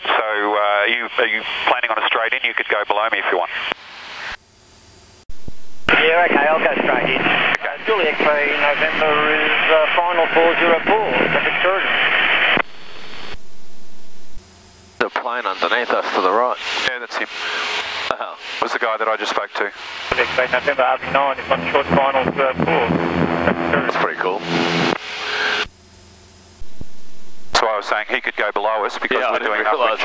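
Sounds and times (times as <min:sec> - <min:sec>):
radio static hiss: 0:00.0 - 0:04.4, 0:05.3 - 0:14.4, 0:15.0 - 0:25.7, 0:26.6 - 0:30.0
faint low hum: 0:26.5 - 0:30.0.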